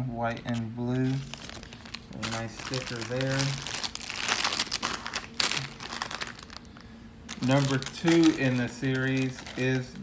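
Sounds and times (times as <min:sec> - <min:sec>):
plastic packaging crinkling: 0:00.5 - 0:10.0.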